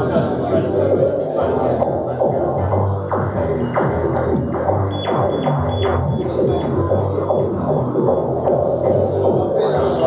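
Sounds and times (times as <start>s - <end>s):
throbbing synth bass line: 0.0s - 10.0s.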